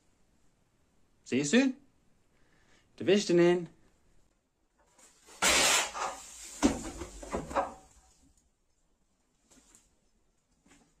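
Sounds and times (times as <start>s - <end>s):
wooden frame smashing apart: 5.3s - 7.8s.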